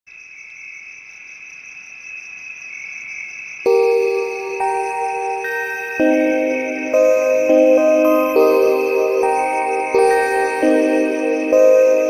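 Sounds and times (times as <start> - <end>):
crickets chirping: 0.1 - 12.0
bell-like mallet notes of ambient music: 3.7 - 12.0.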